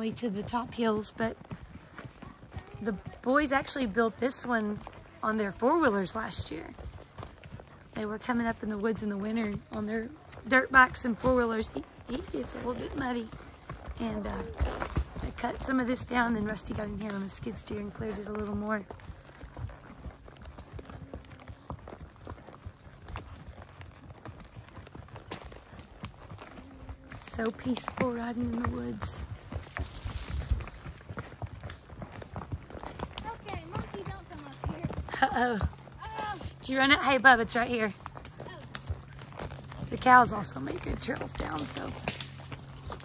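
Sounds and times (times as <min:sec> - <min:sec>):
hoof thuds on muddy trail: 0:00.0 - 0:43.0.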